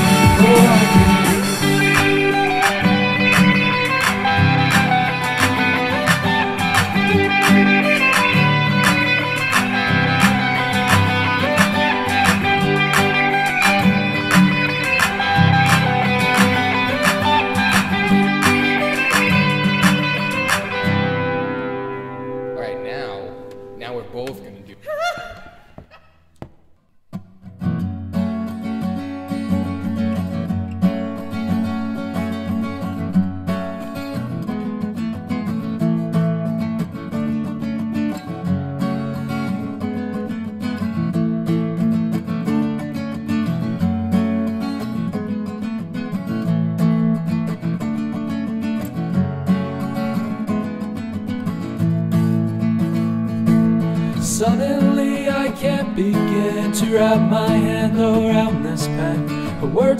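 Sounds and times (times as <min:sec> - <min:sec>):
strummed acoustic guitar: 0:00.0 - 0:24.5, 0:27.1 - 0:59.9
person laughing: 0:24.7 - 0:26.3.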